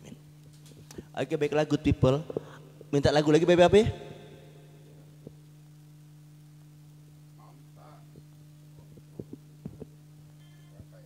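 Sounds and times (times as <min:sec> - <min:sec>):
low electrical hum: 0:00.0 - 0:11.0
soft dull thumps: 0:08.8 - 0:09.9.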